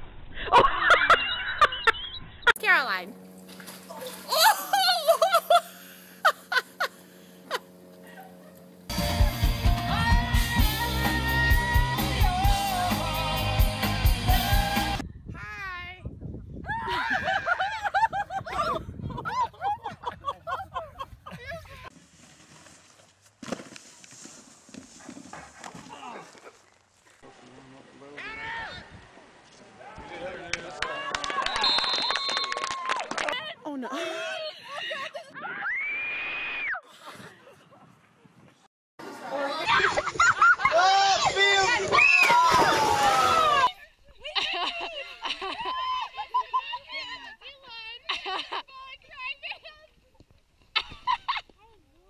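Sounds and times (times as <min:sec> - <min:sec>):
long high scream: 0:35.5 - 0:36.8
people shouting: 0:40.7 - 0:43.7.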